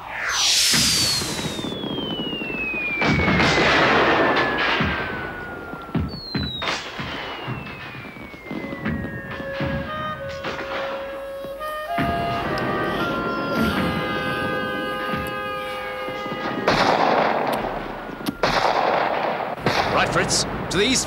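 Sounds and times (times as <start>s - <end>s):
long falling whistle: 0.0s - 19.4s
heavy blasts: 0.0s - 21.0s
sharp cracks: 0.6s - 20.4s
orchestral music: 9.2s - 18.8s.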